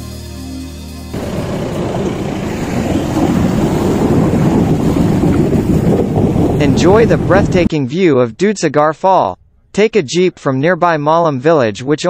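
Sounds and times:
wind buffeting microphone: 0:01.2 - 0:07.7.

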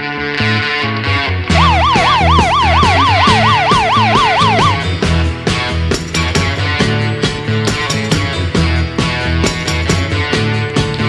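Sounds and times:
ambulance siren yelp: 0:01.5 - 0:05.0
rock music: 0:01.5 - 0:11.0.

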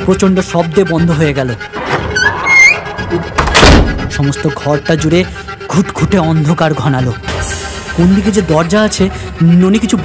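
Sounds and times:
door creaking: 0:01.8 - 0:04.2
door slamming shut: 0:03.4 - 0:04.1.

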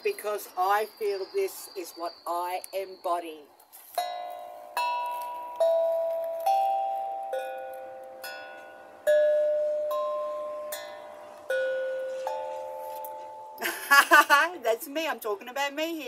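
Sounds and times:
steel tongue drum notes: 0:04.0 - 0:13.7.

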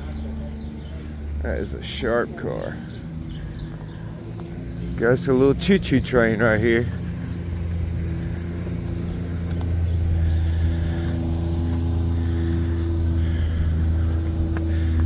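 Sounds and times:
engine running: 0:00.0 - 0:15.0.

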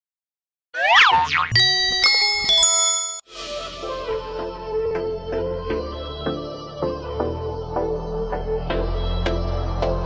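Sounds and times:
springy rising boing: 0:00.8 - 0:02.1
bell-like chime notes: 0:01.6 - 0:03.3.

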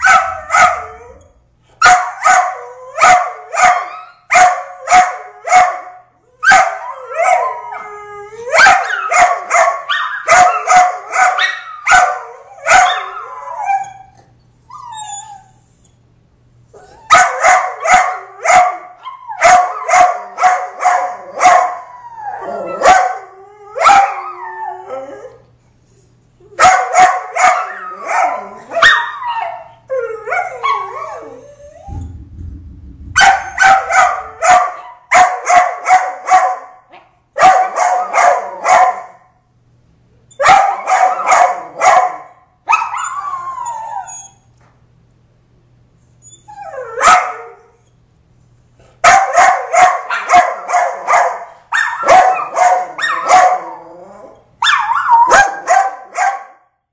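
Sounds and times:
small dogs barking: 0:01.8 - 0:07.6, 0:08.5 - 0:13.3, 0:17.1 - 0:21.8, 0:22.6 - 0:24.2, 0:26.6 - 0:29.7, 0:33.9 - 0:39.2, 0:40.4 - 0:43.0, 0:47.0 - 0:47.6, 0:49.0 - 0:53.8, 0:54.6 - 0:56.6
dogs howling: 0:06.6 - 0:14.2, 0:21.0 - 0:25.4, 0:27.2 - 0:32.0, 0:50.1 - 0:56.1.

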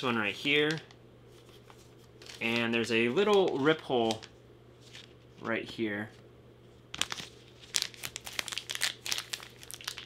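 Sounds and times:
plastic packet crinkling: 0:02.2 - 0:05.2, 0:07.0 - 0:10.0.

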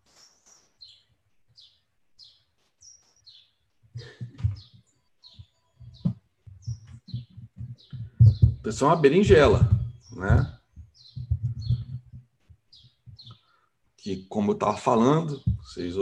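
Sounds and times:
small bird chirping: 0:00.0 - 0:16.0
microphone handling thumps: 0:04.0 - 0:04.8, 0:05.4 - 0:13.4, 0:15.2 - 0:16.0.

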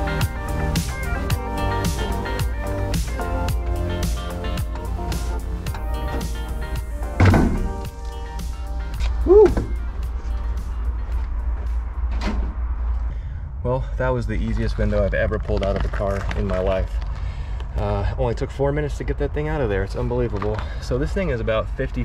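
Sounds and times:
background music: 0:00.0 - 0:12.8.

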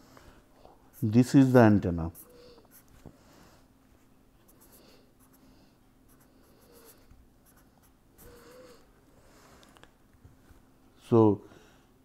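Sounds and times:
pen scratching on paper: 0:06.1 - 0:08.6.

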